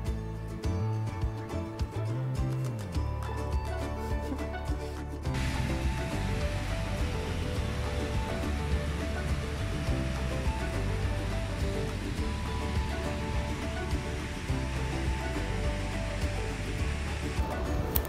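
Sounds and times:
background music: 0.0 - 18.0
whitewater rushing over rocks: 5.2 - 18.0.

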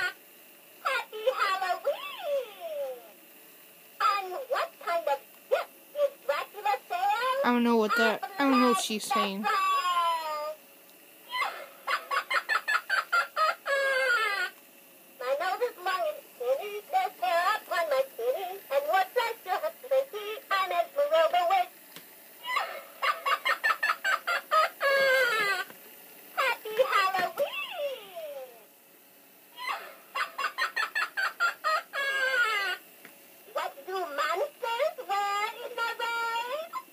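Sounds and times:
toy voice sing-song lines: 0.9 - 3.0, 4.0 - 10.4, 15.2 - 21.7, 26.4 - 28.5, 33.6 - 36.8
toy witch cackling laughter: 11.3 - 14.5, 22.4 - 25.6, 29.6 - 32.8.

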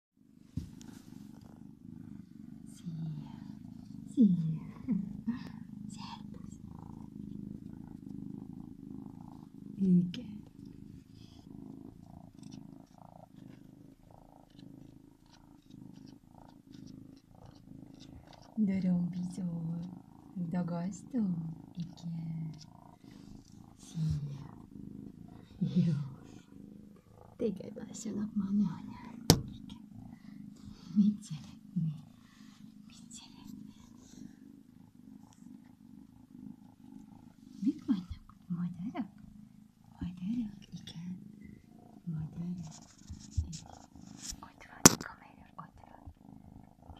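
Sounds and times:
kitten purring: 0.2 - 46.9.

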